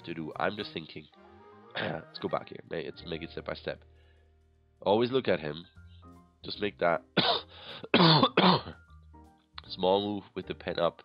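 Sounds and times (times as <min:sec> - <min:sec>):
man clearing his throat: 0:07.2 - 0:08.8
man coughing: 0:07.2 - 0:08.8.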